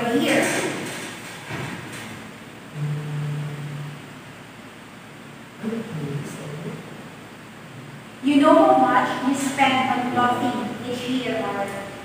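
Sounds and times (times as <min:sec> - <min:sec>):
room noise hiss: 0:00.0 - 0:12.0
person humming: 0:02.7 - 0:04.0.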